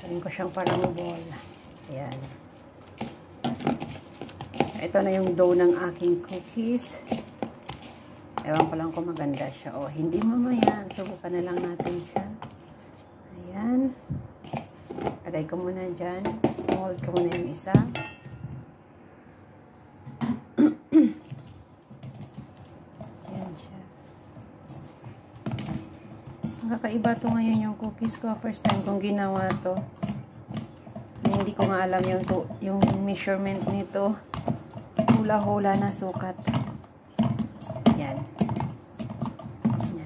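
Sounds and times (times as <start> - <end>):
hand kneading cookie dough: 0.0 - 18.4, 21.2 - 40.0
person coughing: 20.5 - 21.3.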